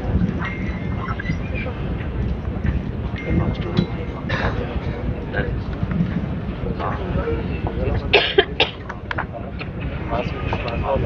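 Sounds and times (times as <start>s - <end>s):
low background din: 0.0s - 11.0s
person coughing: 8.1s - 8.8s.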